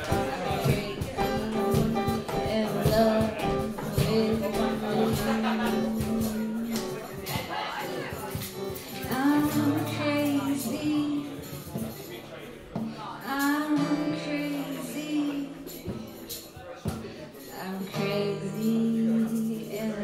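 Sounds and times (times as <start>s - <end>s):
woman singing: 0.0s - 6.9s, 8.8s - 11.8s, 13.0s - 16.0s, 17.5s - 20.0s
strummed acoustic guitar: 0.0s - 20.0s.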